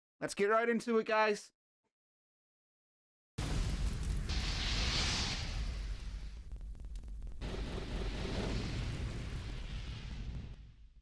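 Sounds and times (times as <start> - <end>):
deep rumble: 3.4 - 10.8
fire crackles: 3.4 - 11.0
hissing whoosh: 4.2 - 6.4.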